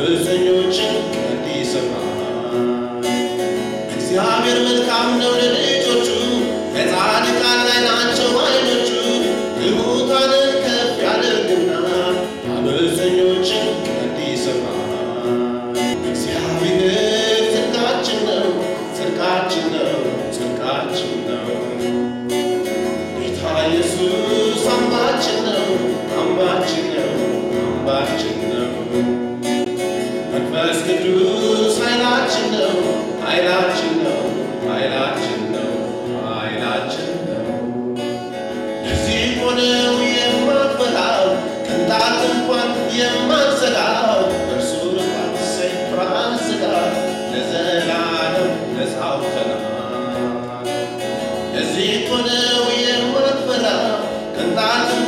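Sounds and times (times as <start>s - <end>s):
acoustic guitar: 0.0s - 55.0s
man singing: 0.0s - 55.0s.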